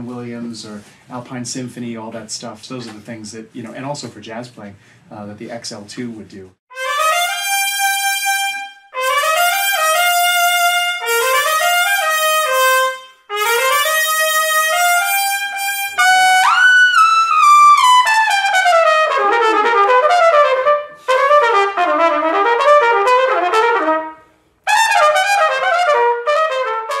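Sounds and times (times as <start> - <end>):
trumpet phrases and runs: 6.7 - 16.7, 18.1 - 27.0.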